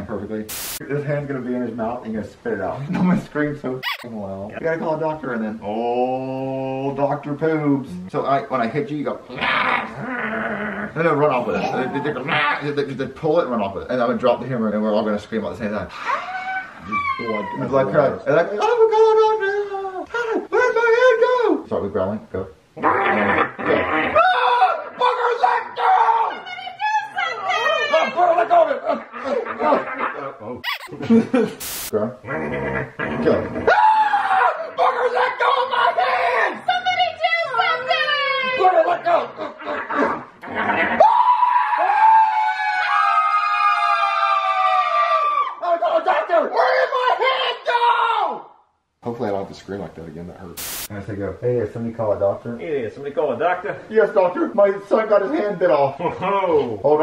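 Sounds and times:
high-pitched screams: 3.8s - 4.1s, 15.9s - 17.7s, 30.6s - 30.9s, 40.8s - 45.6s
person growling: 9.3s - 11.0s, 22.8s - 24.2s, 32.3s - 33.7s
people shrieking and laughing: 15.9s - 17.9s, 37.8s - 45.6s
laughter: 28.2s - 31.6s, 38.6s - 41.0s.

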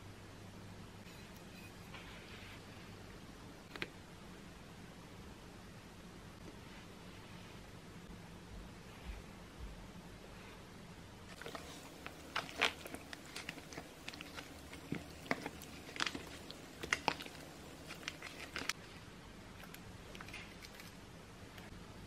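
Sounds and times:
plastic tray crackling: 11.4s - 18.8s
wet squelching of marinated chicken: 11.4s - 18.8s.

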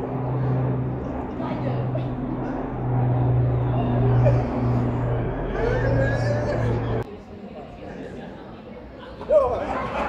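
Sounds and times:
low-pitched hum: 0.0s - 7.1s
faint talk of passers-by: 0.0s - 10.0s.

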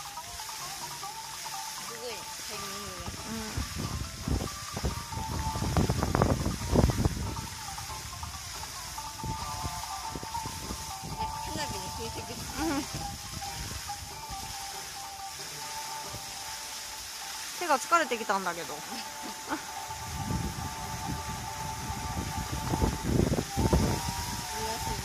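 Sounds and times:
fountain water jets hissing: 0.0s - 25.0s.

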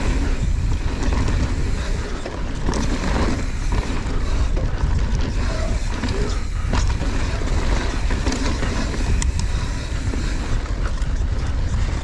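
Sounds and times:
bike rattling: 0.0s - 12.0s
wind noise on microphone: 0.0s - 12.0s.

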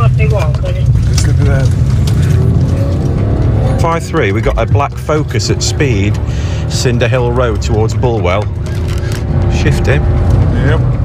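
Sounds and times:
car engine running: 0.0s - 11.0s
road noise: 0.0s - 11.0s
background music: 1.7s - 11.0s.

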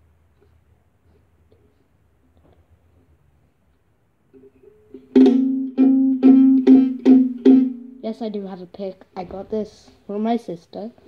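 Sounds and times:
ukulele plucked notes: 4.4s - 8.0s
ukulele strums: 4.4s - 8.2s.

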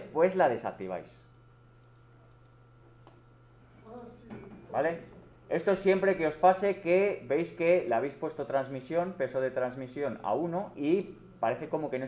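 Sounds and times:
faint electrical hum: 0.0s - 12.0s
computer mouse clicks: 1.2s - 4.1s, 9.3s - 10.2s.

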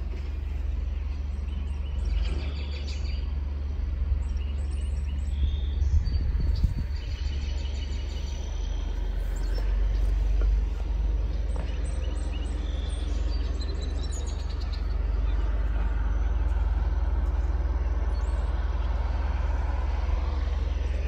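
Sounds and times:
birds chirping: 0.0s - 21.0s
steady low rumble: 0.0s - 21.0s.

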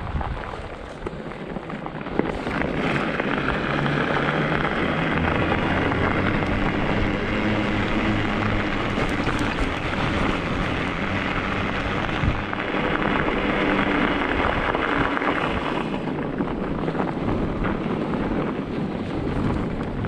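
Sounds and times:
tires rolling on wet asphalt: 0.0s - 20.0s.

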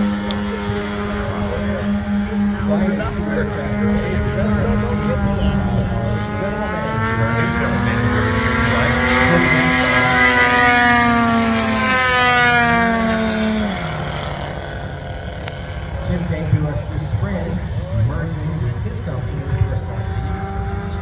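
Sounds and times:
model airplane engines droning: 0.0s - 21.0s.

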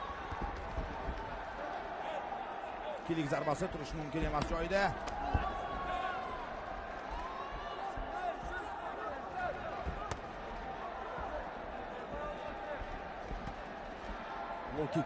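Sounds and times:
crowd murmur in a hall: 0.0s - 15.0s.

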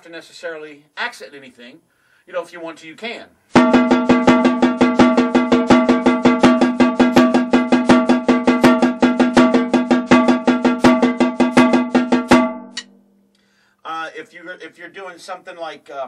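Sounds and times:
snare drum strokes: 3.5s - 12.9s
drum ring: 3.6s - 13.2s.

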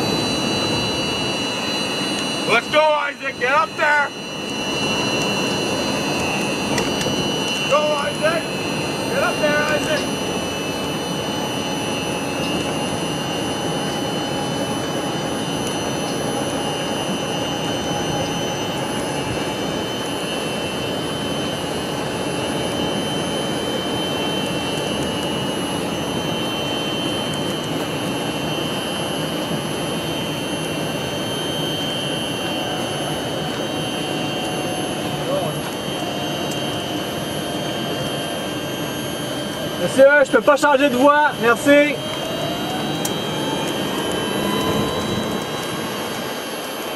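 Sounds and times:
faint high whines: 0.0s - 46.9s
small vehicle running: 32.3s - 46.9s.

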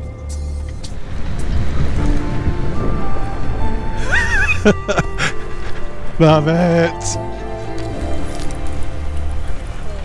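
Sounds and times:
background music: 0.0s - 10.0s
wind on microphone: 0.8s - 4.1s.

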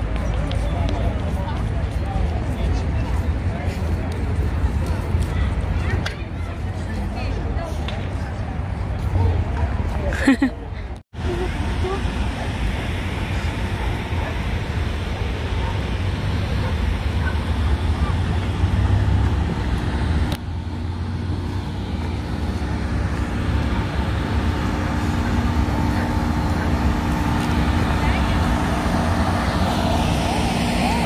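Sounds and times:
people's voices: 0.0s - 20.1s, 22.0s - 31.0s
road traffic rumble: 0.0s - 31.0s.

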